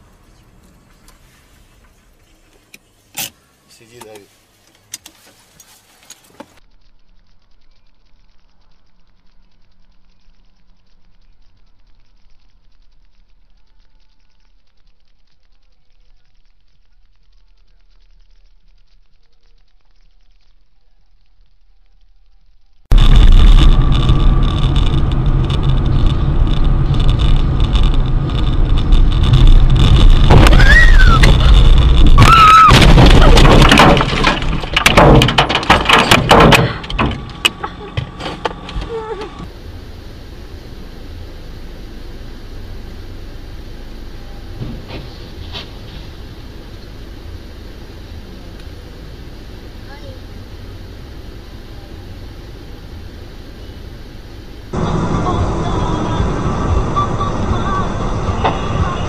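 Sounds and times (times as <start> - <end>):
road and engine rumble: 0.0 - 59.0
thin steady whine: 5.6 - 33.0, 35.8 - 59.0
crash bangs and knocks: 29.5 - 38.2
tyre squeals: 30.2 - 33.4.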